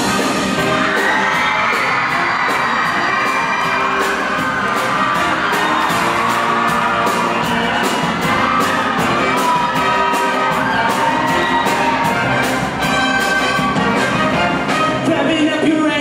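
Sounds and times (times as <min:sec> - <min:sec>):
live band music: 0:00.0 - 0:16.0
audience cheering and whooping: 0:00.6 - 0:13.9.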